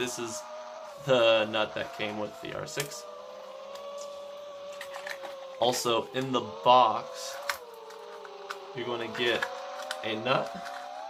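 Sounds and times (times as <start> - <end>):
quadcopter motors whining: 0.0 - 11.0.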